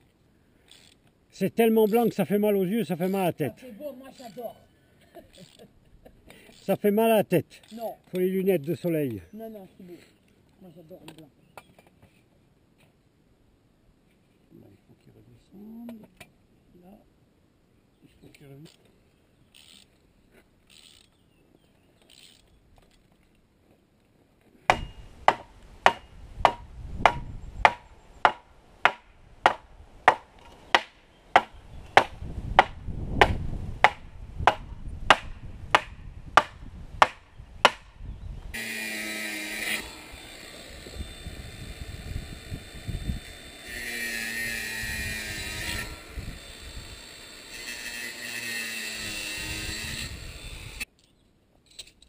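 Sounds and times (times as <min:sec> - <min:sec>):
hammer striking metal post: 0:24.7 - 0:37.9
angle grinder cutting wire: 0:38.6 - 0:50.9.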